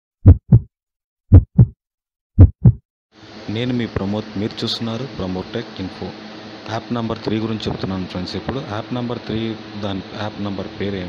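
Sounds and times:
heartbeat thumps: 0:00.2 - 0:00.7, 0:01.3 - 0:01.8, 0:02.4 - 0:02.8.

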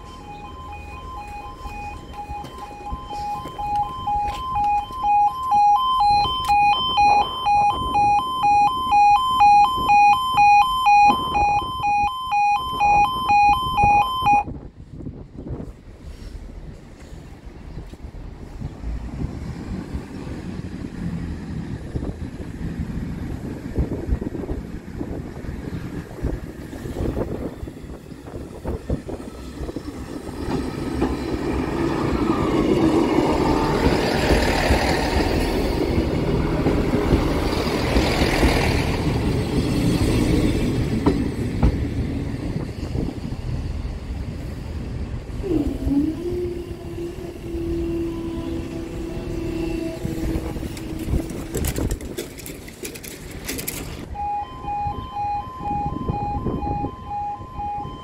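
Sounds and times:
diesel train passing: 0:00.0 - 0:10.9, 0:14.5 - 0:58.0
level crossing two-tone alarm: 0:00.0 - 0:14.5, 0:54.1 - 0:58.0
wheels clicking over rail joints: 0:49.1 - 0:54.1.

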